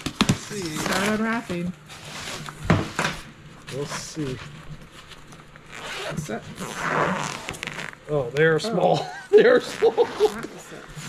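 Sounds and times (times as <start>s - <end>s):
zipper pulled open: 5.7s - 8.0s, 9.5s - 11.0s.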